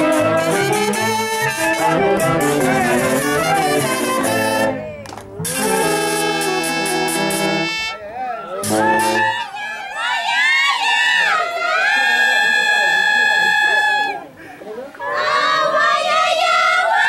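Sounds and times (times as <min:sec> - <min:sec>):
brass band chords: 0:00.0 - 0:09.7, 0:11.9 - 0:14.3.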